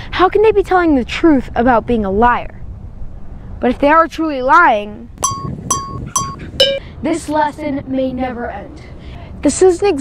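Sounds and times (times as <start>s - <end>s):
bell-like chime tones: 5.2s - 6.8s.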